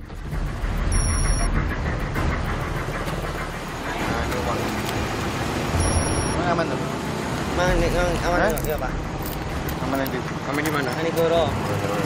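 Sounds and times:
road traffic: 0.0s - 12.0s
high-pitched electronic tone: 0.9s - 1.5s, 5.8s - 6.4s
people talking: 3.8s - 4.8s, 7.6s - 9.0s, 9.8s - 12.0s.

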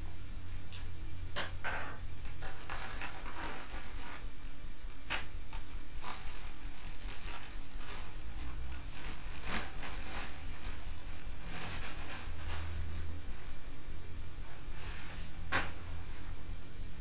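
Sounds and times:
steady low hum: 0.0s - 17.0s
plastic packaging crinkling: 6.0s - 13.2s.

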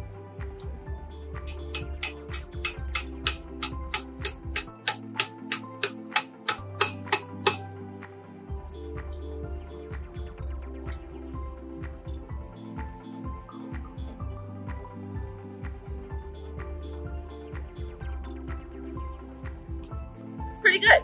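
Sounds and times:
background music with bass line: 0.0s - 21.0s
steady percussive tick: 1.4s - 7.6s.

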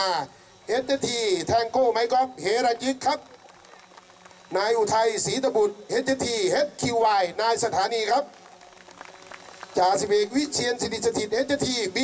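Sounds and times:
announcements over a pa system: 0.0s - 8.6s, 9.6s - 12.0s
scattered applause: 3.0s - 4.8s, 7.5s - 10.7s.

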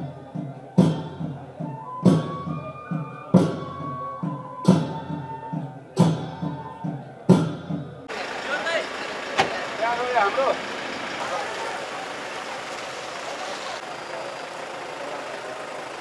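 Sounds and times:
voices talking: 0.0s - 16.0s
traffic hum: 8.0s - 16.0s.

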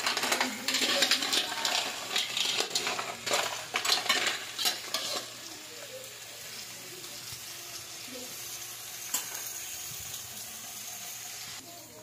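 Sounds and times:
mussels sizzling in a wok: 0.0s - 12.0s.

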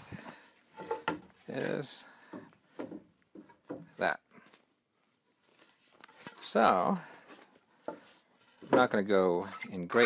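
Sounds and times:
wooden board knocking and scraping: 0.8s - 1.4s, 2.3s - 4.0s, 7.8s - 8.9s.

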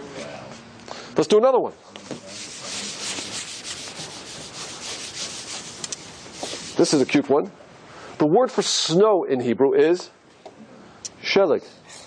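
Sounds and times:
eraser rubbing across a board: 2.2s - 7.2s.

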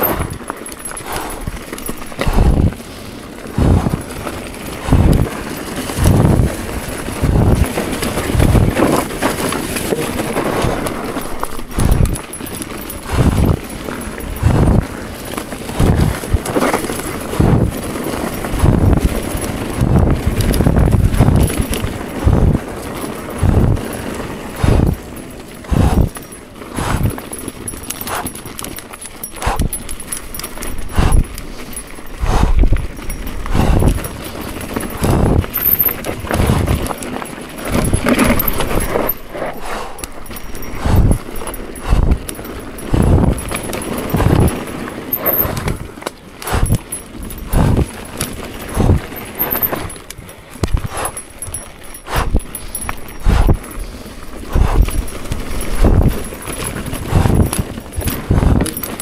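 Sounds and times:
heavy breathing: 0.0s - 6.5s, 9.8s - 14.9s, 23.4s - 45.8s, 46.4s - 50.0s, 50.6s - 59.0s
bike clicking rattle: 0.0s - 59.0s
tyres on dirt: 0.0s - 59.0s.

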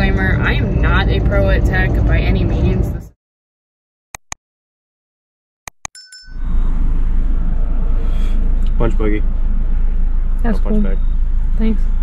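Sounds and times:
low outdoor rumble: 0.0s - 3.2s, 6.3s - 12.0s
mouse clicks: 4.2s - 4.4s
short bell ding: 6.0s - 6.6s.

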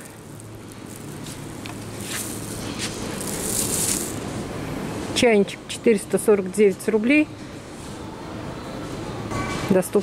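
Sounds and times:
supermarket background noise: 0.0s - 10.0s.

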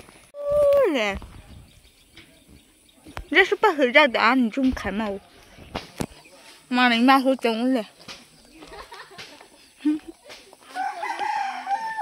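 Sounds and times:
rooster crowing: 10.7s - 12.0s.

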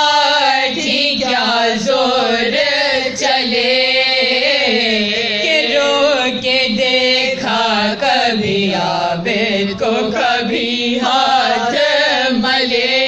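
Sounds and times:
women chanting a lament: 0.0s - 13.0s.

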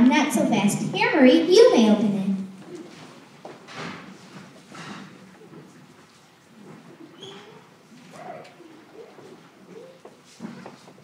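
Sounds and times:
soft voices murmuring: 6.6s - 11.0s.

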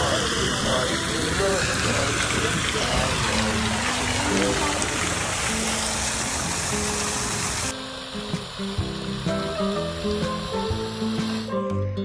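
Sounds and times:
fountain water splashing: 0.0s - 11.6s
background music: 0.0s - 12.0s.

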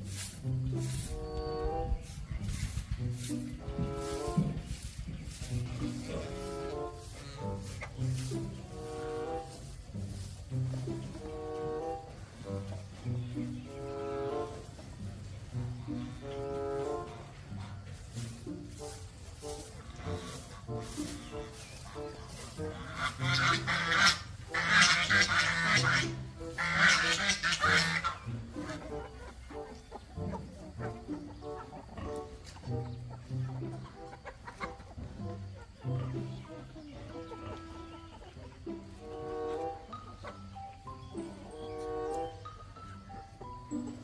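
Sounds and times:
background music: 0.0s - 44.0s
chicken calling loudly: 22.7s - 28.2s.

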